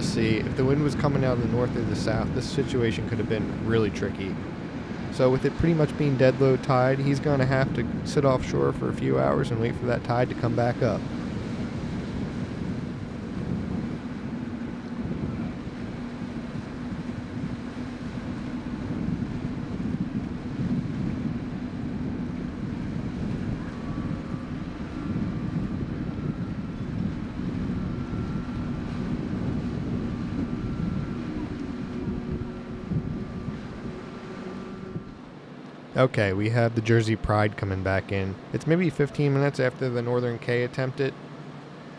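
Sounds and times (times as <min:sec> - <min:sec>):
wind gusting on microphone: 0:00.0 - 0:35.4
boat engine rumble: 0:00.0 - 0:41.9
faint high tone: 0:23.4 - 0:26.9.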